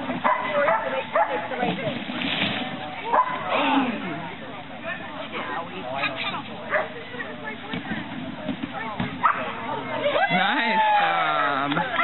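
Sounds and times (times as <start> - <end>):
people's voices: 0.1 - 12.0
dog barking: 0.2 - 1.5, 3.1 - 3.5, 6.7 - 7.0, 9.2 - 9.5.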